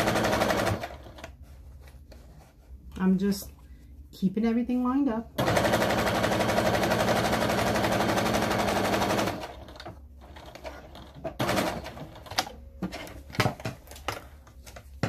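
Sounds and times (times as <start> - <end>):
sewing machine stitching: 0.0 - 1.3, 5.4 - 12.5.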